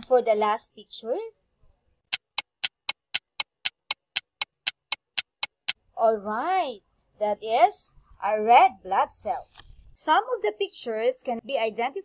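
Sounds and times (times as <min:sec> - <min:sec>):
clock ticking: 0:02.1 - 0:05.8.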